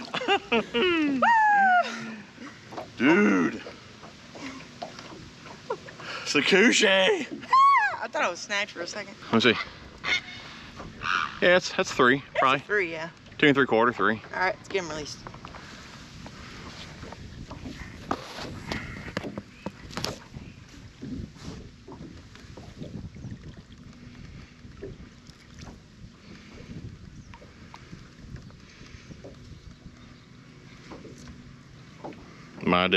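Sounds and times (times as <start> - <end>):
water sloshing and splashing: 0.0 - 1.2, 1.8 - 32.9
knocks and clicks on boat: 2.6 - 3.0, 3.6 - 5.9, 14.0 - 15.6, 16.2 - 32.9
wind on microphone: 15.6 - 30.2.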